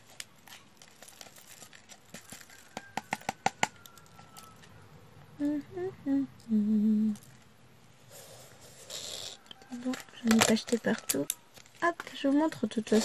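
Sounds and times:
woman humming: 5.4 - 7.3
small plastic tools clicking: 9.5 - 12.2.

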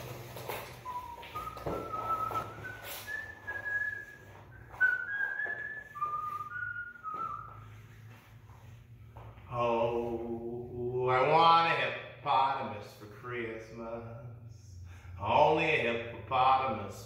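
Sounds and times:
man whistling a tune: 0.4 - 8.2
man singing: 9.5 - 14.4.

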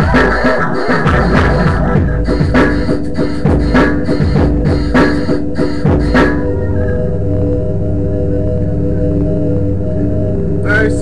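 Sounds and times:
programmed drum beat: 0.0 - 6.5
held synth chord: 0.0 - 11.0
synth backing: 0.0 - 11.0.

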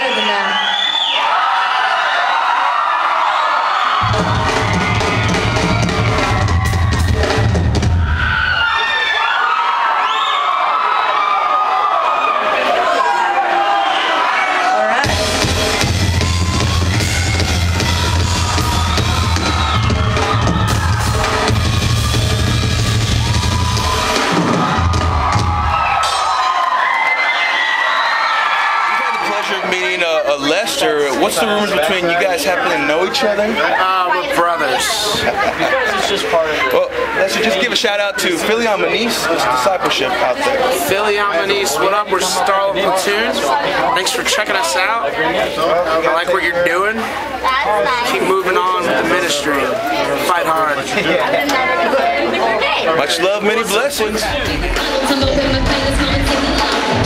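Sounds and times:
fans cheering and screaming: 0.0 - 57.0
live rock band: 3.9 - 8.8, 15.0 - 26.5
heavy drums and bass: 4.0 - 8.3, 15.0 - 26.3, 53.9 - 57.0.

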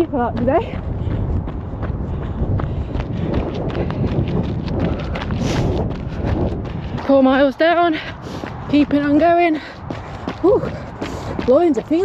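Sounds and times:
running footsteps on pavement: 0.0 - 12.0
wind rumble on microphone: 0.0 - 12.0.

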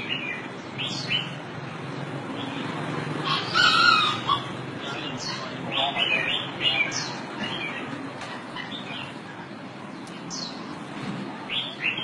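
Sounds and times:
rooster squawk: 3.2 - 4.6.

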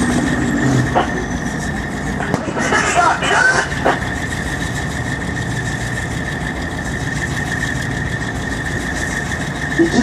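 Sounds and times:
high whine: 0.0 - 10.0
tank diesel engines rumbling: 0.0 - 10.0.

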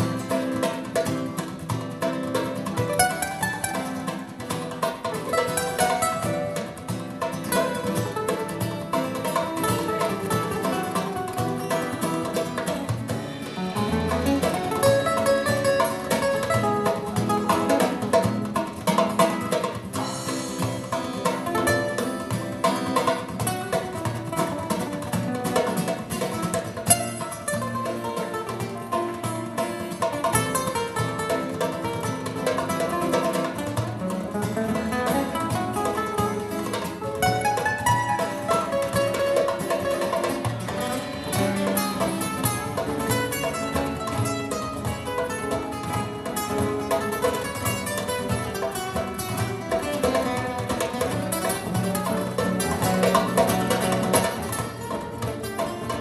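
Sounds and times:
acoustic guitars playing: 0.0 - 56.0
drum kit and hand drum percussion: 0.0 - 56.0.

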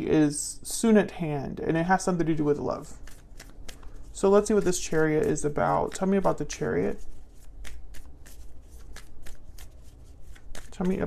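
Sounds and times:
cards being shuffled: 2.9 - 11.0.

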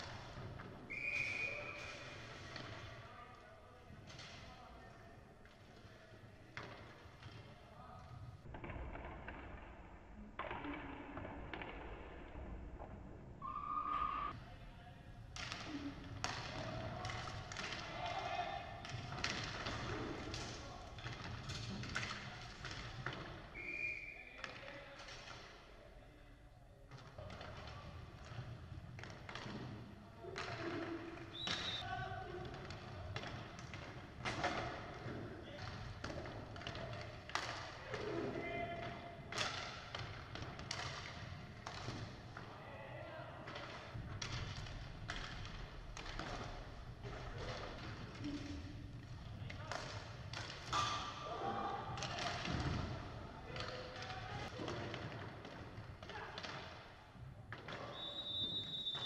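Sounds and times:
sticks and puck clacking: 0.0 - 9.8, 15.2 - 23.7, 24.3 - 25.8, 26.9 - 42.6, 43.3 - 59.0.

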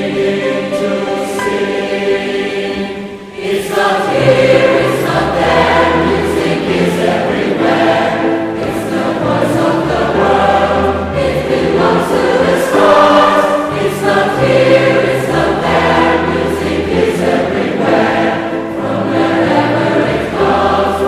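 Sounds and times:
choir singing: 0.0 - 21.0.

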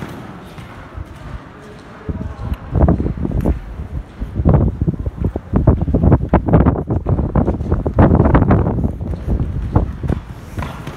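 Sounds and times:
wind buffeting microphone: 2.0 - 10.9.

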